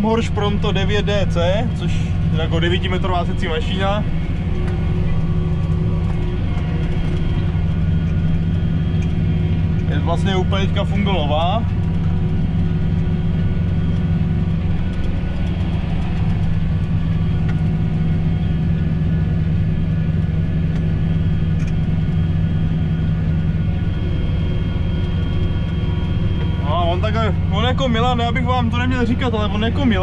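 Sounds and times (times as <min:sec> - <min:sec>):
faint steady whine: 0:00.0 - 0:30.0
tractor diesel engine drone: 0:00.0 - 0:30.0.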